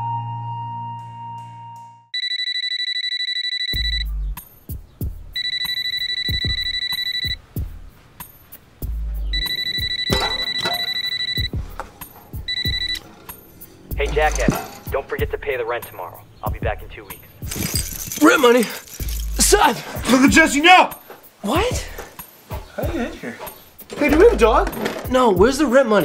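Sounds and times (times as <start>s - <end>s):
gentle flute music: 0.0s - 2.1s
telephone bell ringtone: 2.2s - 4.1s, 5.4s - 7.4s, 9.3s - 13.3s.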